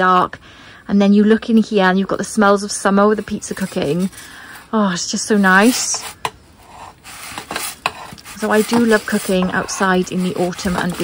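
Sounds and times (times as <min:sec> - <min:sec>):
metal peel scraping on stone: 0:03.1 - 0:11.0.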